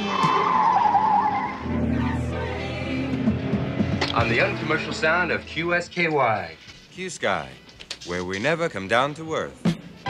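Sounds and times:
car tyres squealing: 0:00.0 - 0:02.4
music: 0:00.0 - 0:10.0.

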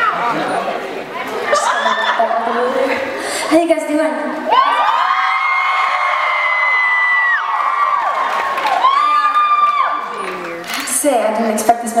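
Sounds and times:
concert audience screaming and cheering: 0:04.3 - 0:11.0.

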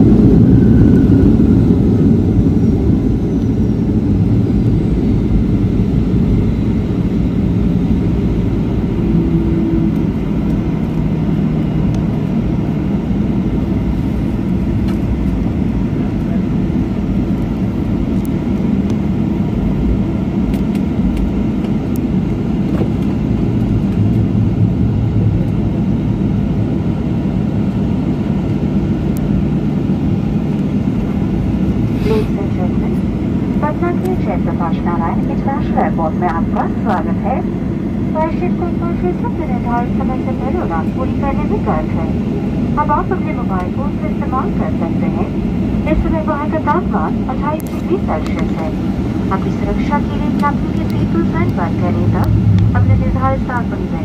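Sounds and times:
airliner cabin rumble: 0:00.0 - 0:54.0.

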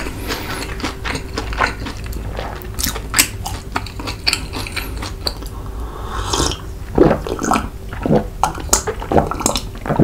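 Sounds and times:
chewing food: 0:00.0 - 0:05.6, 0:07.2 - 0:10.0.

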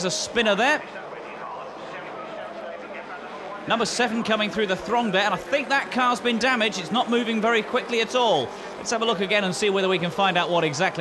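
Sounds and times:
racing car engines droning: 0:00.0 - 0:11.0.

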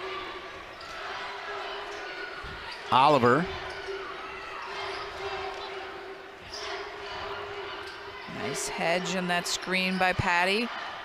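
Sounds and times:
murmur of arena crowd: 0:00.0 - 0:11.0.

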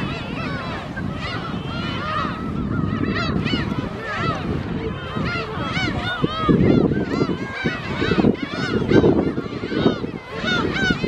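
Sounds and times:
gulls calling: 0:00.0 - 0:11.0.

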